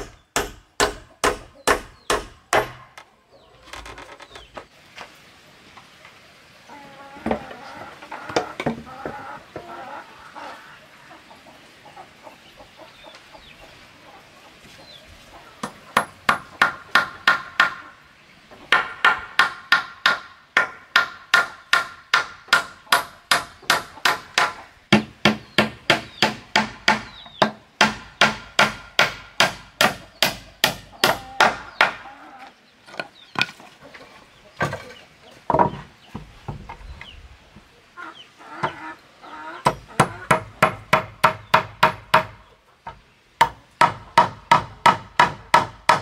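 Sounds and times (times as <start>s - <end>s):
hammer driving nails into wood: 0.0s - 2.8s.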